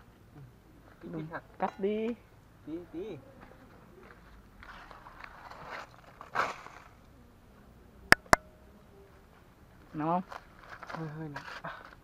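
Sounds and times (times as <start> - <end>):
aluminium foil crinkling and tearing: 10.2 - 12.0.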